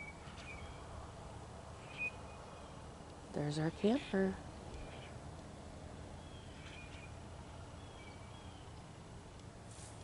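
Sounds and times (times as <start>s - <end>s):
faint bird chirps: 1.8s - 2.8s, 4.7s - 5.6s, 6.2s - 8.8s.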